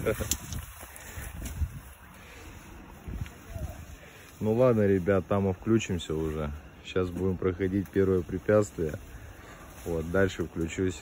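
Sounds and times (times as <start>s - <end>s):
wind rumbling on microphone: 0.0s - 4.2s
footsteps on ground: 0.0s - 11.0s
leaves and branches rustling: 0.0s - 11.0s.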